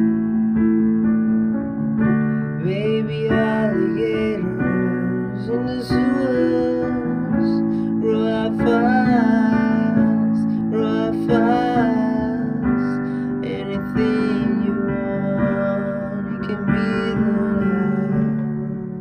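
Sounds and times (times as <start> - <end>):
digital piano chords: 0.0 - 19.0
man singing: 2.6 - 19.0.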